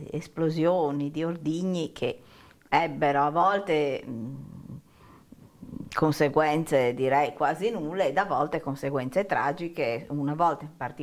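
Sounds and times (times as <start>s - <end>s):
woman inhaling: 2.2s - 2.7s, 4.4s - 5.8s.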